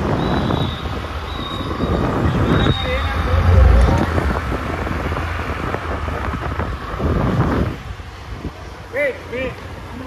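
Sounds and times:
wind rumbling on microphone: 0.0s - 8.8s
onlookers' voices: 2.2s - 4.9s.

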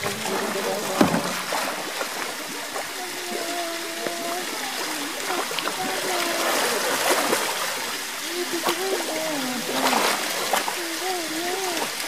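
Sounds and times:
water splashing and churning: 0.0s - 12.0s.

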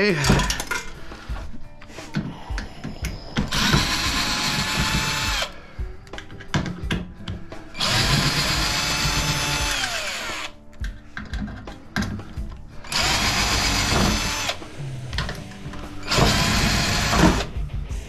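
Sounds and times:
cordless drill motor whining: 3.4s - 5.6s, 7.8s - 10.6s, 12.9s - 14.6s, 16.0s - 17.5s.

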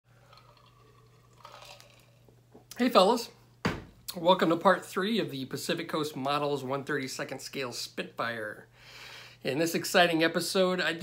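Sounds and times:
sipping and swallowing: 0.2s - 2.3s.

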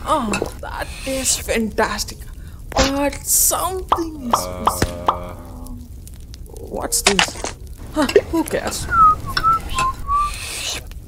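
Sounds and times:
person whistling a tune: 9.0s - 10.3s.

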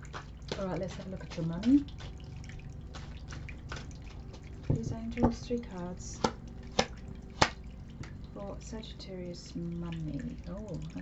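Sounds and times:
faint low hum: 0.0s - 11.0s
water dripping: 0.0s - 11.0s
water fountain trickling: 0.0s - 11.0s.

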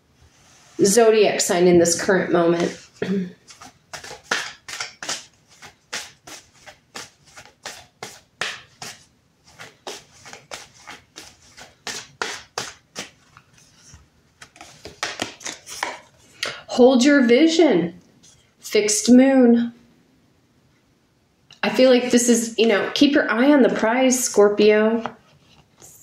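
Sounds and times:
cards being shuffled by hand: 2.5s - 16.3s.

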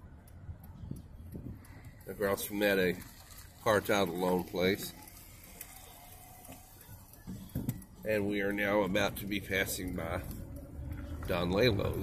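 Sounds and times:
car rumble from inside cabin: 9.4s - 12.0s.

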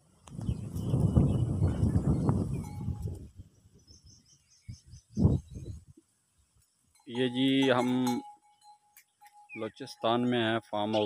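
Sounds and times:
wind and handling rumble: 0.1s - 6.0s
small bird chirping: 0.3s - 7.3s, 8.4s - 9.9s.

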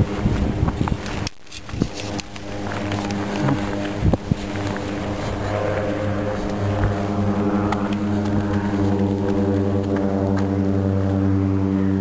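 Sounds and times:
steady engine drone: 0.0s - 12.0s.

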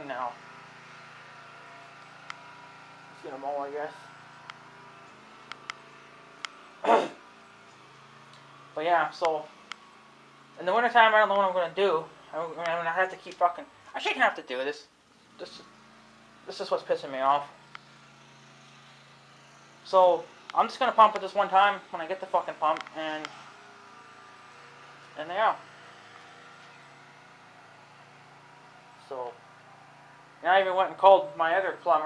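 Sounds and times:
steady low hum: 0.0s - 32.0s
faint clicks: 5.4s - 5.8s, 6.4s - 6.6s
man speaking: 10.6s - 15.7s, 19.9s - 23.3s.

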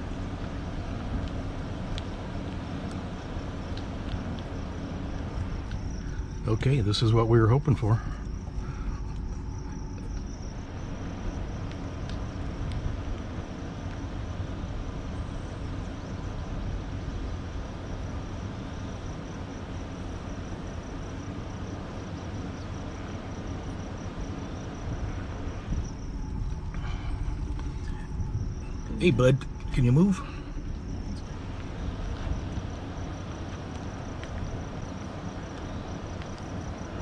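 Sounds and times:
truck rolling in traffic: 0.0s - 37.0s.

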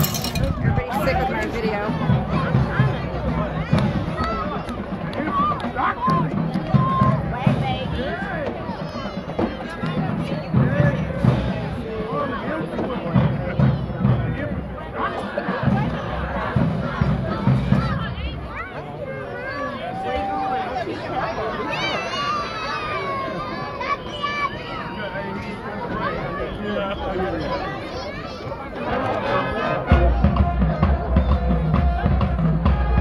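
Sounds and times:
marching band playing: 0.0s - 18.8s, 29.8s - 33.0s
crowd chatter and shouts: 0.0s - 33.0s.

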